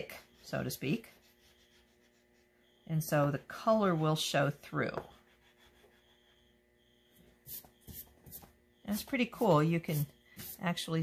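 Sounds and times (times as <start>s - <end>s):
oil pastel rubbing on paper: 0.0s - 6.5s, 7.3s - 10.9s.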